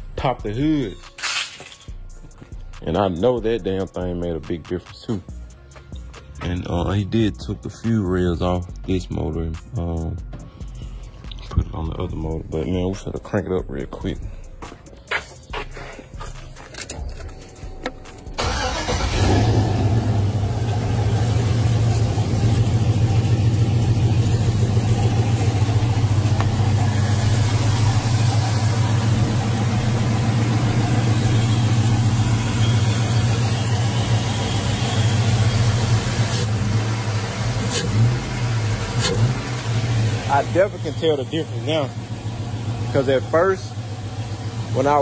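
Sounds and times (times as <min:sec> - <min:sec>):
engine starting and running: 0:16.6 - 0:45.0.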